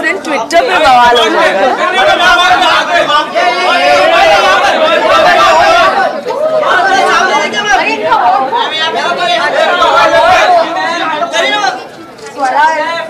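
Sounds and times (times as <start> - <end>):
crowd chatter and calling out: 0.0 - 13.0.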